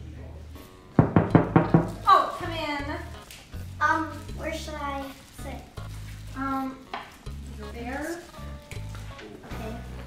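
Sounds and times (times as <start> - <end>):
knocks on wooden door: 1.0 - 2.0.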